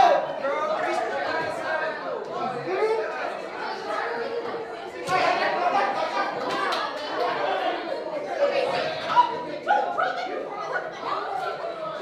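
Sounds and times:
chatter of many students: 0.0 - 12.0.

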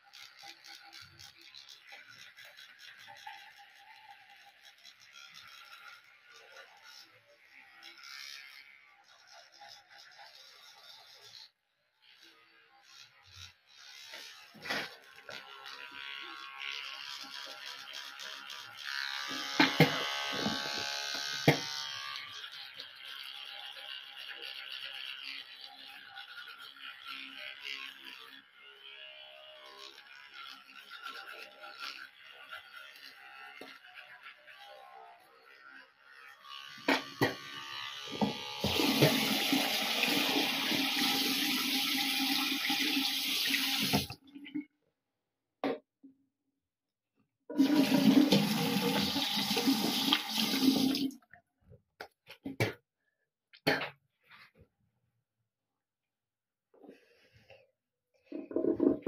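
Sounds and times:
toothbrush scrubbing teeth: 0.0 - 44.2
running water: 47.6 - 51.2.

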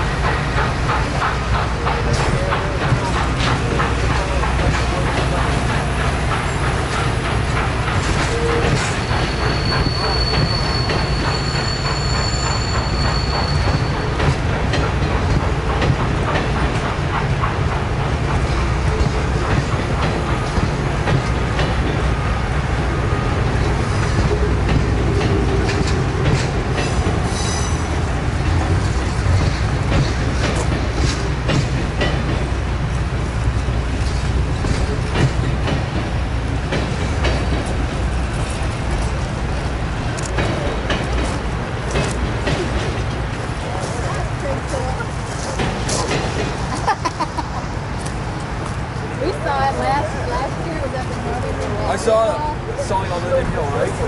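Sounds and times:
train wheels rumbling and clicking: 0.0 - 54.0
high wheel squeal: 8.2 - 14.3, 27.2 - 28.0.

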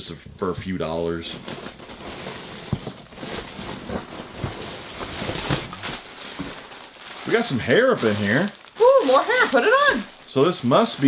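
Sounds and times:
plastic packaging crinkling: 1.2 - 11.0.

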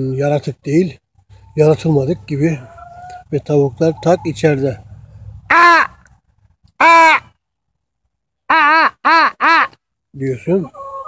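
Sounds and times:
man cawing: 5.5 - 6.0, 6.8 - 7.4, 8.5 - 9.8.

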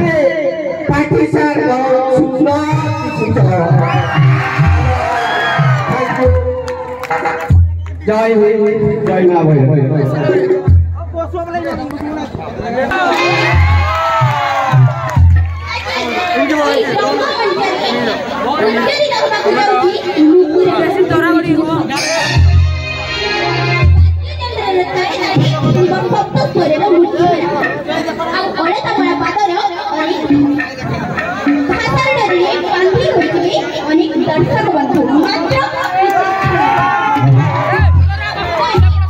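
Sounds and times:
background chatter: 0.0 - 39.0
woman talking into a microphone: 15.6 - 22.0, 31.7 - 36.1
woman speaking over public address: 16.6 - 22.3, 31.7 - 36.0.

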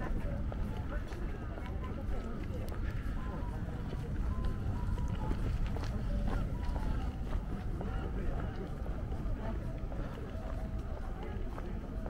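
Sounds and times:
steady low rumble: 0.0 - 11.8
footsteps on pavement: 0.0 - 12.0
people talking: 0.0 - 12.0.

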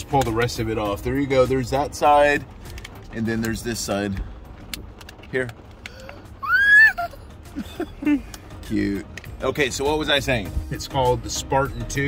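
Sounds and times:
girl squealing with delight: 6.0 - 7.2.

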